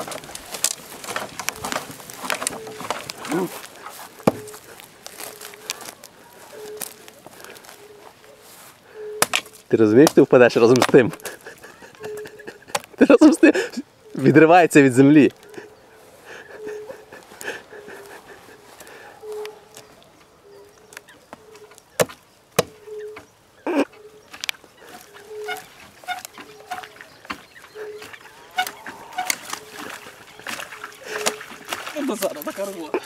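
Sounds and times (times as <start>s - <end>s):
wooden knocks and cracks: 0.0s - 6.0s, 9.2s - 11.3s, 24.3s - 32.0s
low animal call: 1.4s - 9.3s, 15.3s - 21.8s, 22.7s - 31.7s.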